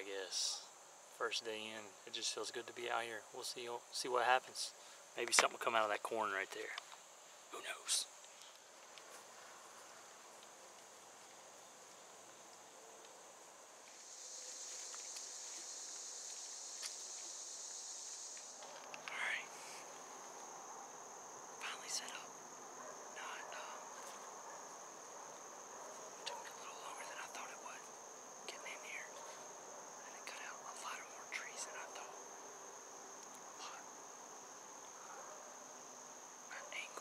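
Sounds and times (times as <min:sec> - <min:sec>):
insects droning: 0:00.0 - 0:37.0.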